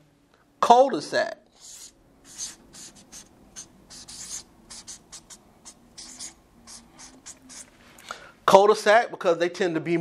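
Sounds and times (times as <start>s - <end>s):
marker scratching on paper: 1.5s - 7.7s.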